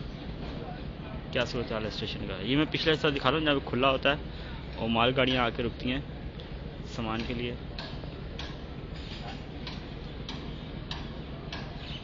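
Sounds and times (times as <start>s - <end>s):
sharp ticking clicks: 7.1s - 8.7s, 9.6s - 11.8s.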